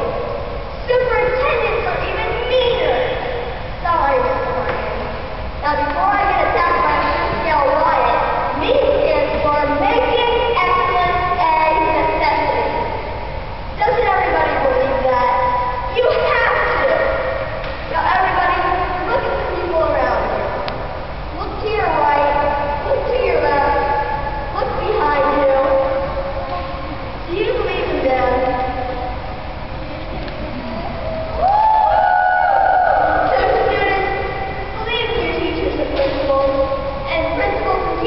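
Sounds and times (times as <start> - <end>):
child talking: 0.0 - 13.0, 13.8 - 20.6, 21.3 - 29.0, 33.0 - 38.0
young voices shouting: 29.9 - 33.6.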